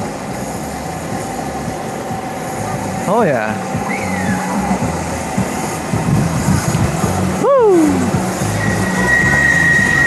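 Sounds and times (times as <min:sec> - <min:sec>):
electric motor hum: 0:00.0 - 0:10.0
road and wind noise: 0:00.0 - 0:10.0.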